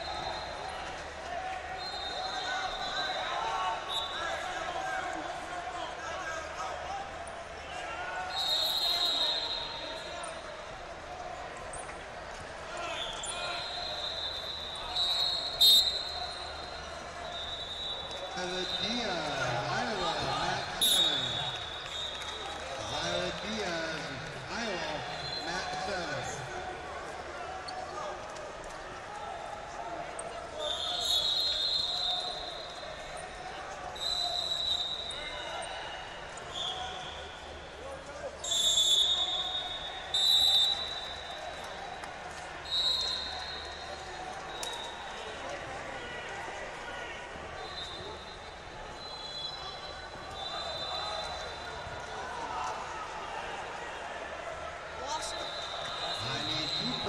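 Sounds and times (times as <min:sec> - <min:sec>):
referee's whistle blowing: 0:00.0 - 0:01.0, 0:01.7 - 0:04.7, 0:08.2 - 0:10.6, 0:12.8 - 0:26.6, 0:30.6 - 0:45.3, 0:47.4 - 0:52.3, 0:55.0 - 0:57.0
coaches and spectators shouting: 0:00.0 - 0:57.0
voices in a hall: 0:00.0 - 0:57.0.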